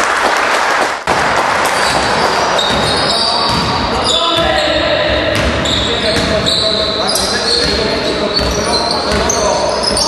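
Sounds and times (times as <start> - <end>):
echoing gym noise: 0.9 - 10.0
basketball bouncing on court: 1.1 - 10.0
players' voices: 1.8 - 10.0.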